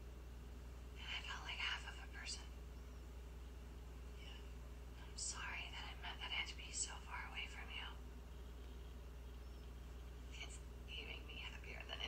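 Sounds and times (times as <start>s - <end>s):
steady low hum: 0.0s - 12.0s
faint whispering voice: 1.0s - 2.6s, 4.2s - 8.1s, 10.3s - 12.0s.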